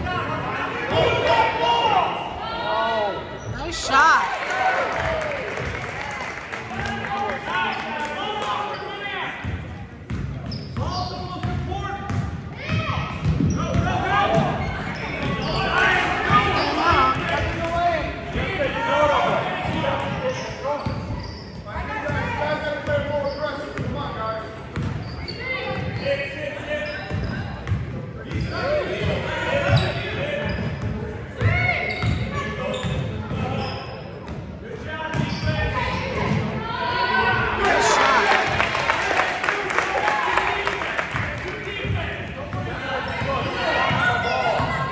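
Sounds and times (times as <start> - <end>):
voices calling out echoing: 12.6 - 20.8, 36.0 - 44.9.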